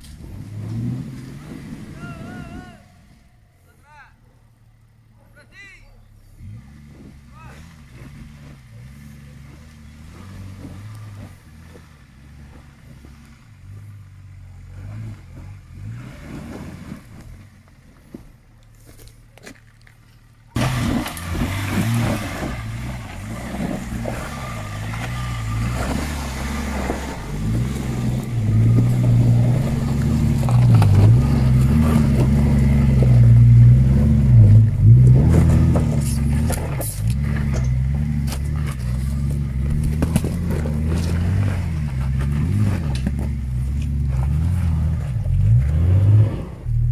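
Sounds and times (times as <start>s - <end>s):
off-road vehicle engine under load: 0.0s - 46.9s.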